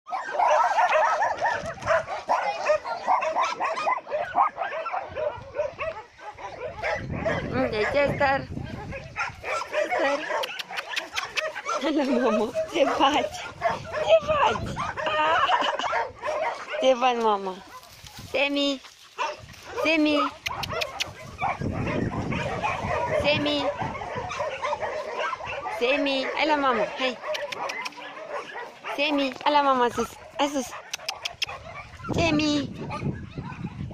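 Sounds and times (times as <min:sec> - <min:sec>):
dog yipping: 0:00.1 - 0:07.5, 0:08.8 - 0:16.9, 0:20.2 - 0:29.0.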